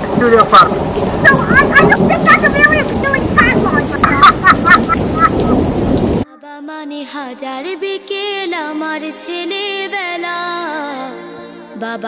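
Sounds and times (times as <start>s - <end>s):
song with accompaniment: 6.4s - 12.0s.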